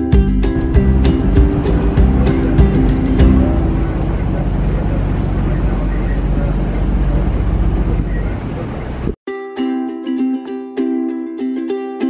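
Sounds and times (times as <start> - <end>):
strummed guitar music: 0.0 - 5.5, 9.3 - 12.0
boat engine low rumble: 0.3 - 9.2.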